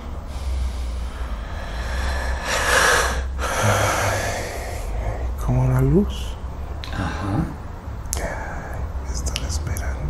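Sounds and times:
steady low hum: 0.0s - 10.0s
person whispering: 1.5s - 5.8s, 6.8s - 10.0s.

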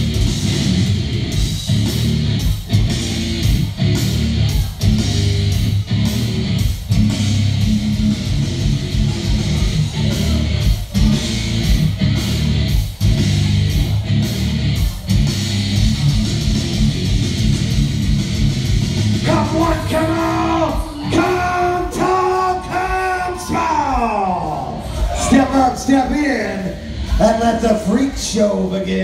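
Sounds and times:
rock music over a pa: 0.0s - 28.9s.

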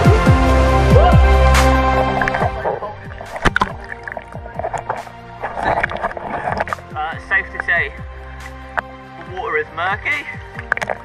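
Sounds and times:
background music: 0.0s - 11.0s
water sloshing and splashing: 1.2s - 9.4s, 10.1s - 11.0s.

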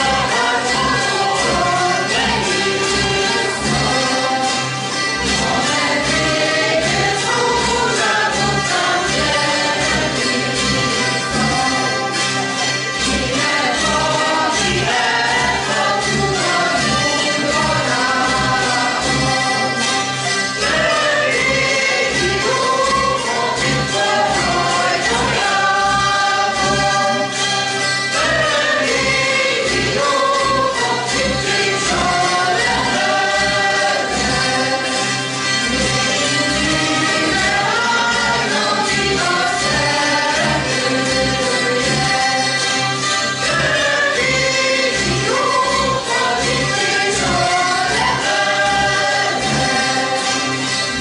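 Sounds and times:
voices singing in unison: 0.0s - 51.0s
zither ensemble strumming: 0.0s - 51.0s.

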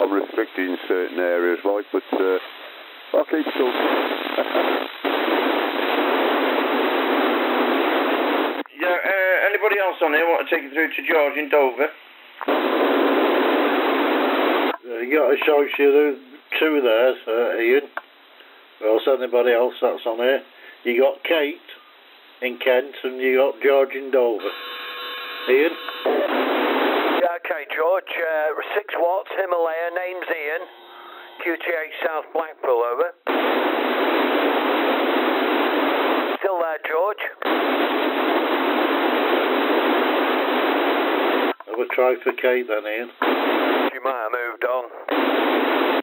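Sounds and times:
radio static hiss: 0.0s - 46.0s
voice over the radio: 3.2s - 4.8s, 25.5s - 26.4s, 27.2s - 33.2s, 36.4s - 37.4s, 43.7s - 45.1s.

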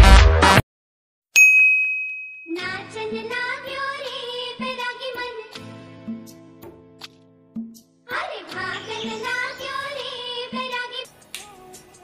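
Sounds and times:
bell-like ding: 1.4s - 2.6s
background music with singing: 2.5s - 12.0s.

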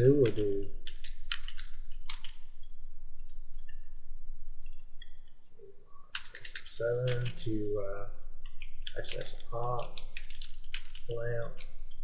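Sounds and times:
keyboard typing: 0.0s - 2.4s, 6.1s - 7.6s, 8.4s - 12.0s
low hum: 0.0s - 12.0s.

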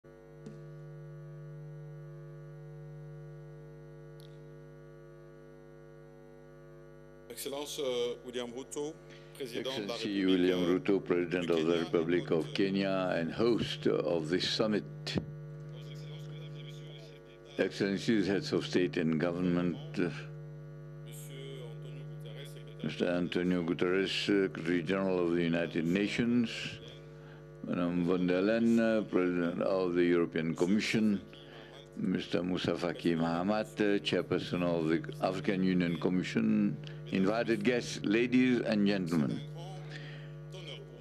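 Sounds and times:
buzzy electrical hum: 0.0s - 41.0s
person saying uh: 9.5s - 15.3s.

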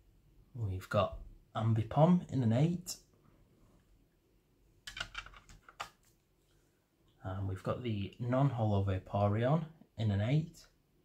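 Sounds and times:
faint room noise: 0.0s - 11.0s.

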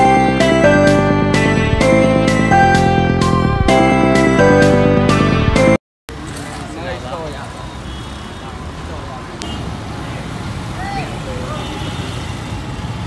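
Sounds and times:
road traffic rumble: 6.1s - 13.0s.

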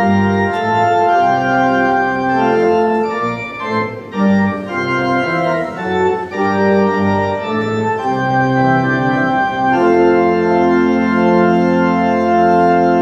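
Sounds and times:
church organ playing a hymn: 0.0s - 13.0s.

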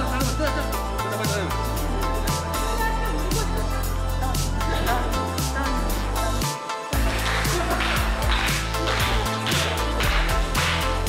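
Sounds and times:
music with a steady beat: 0.0s - 11.0s.

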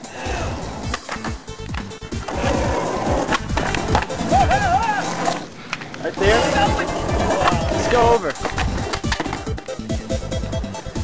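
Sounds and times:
skateboard wheels rolling on pavement: 0.0s - 11.0s.

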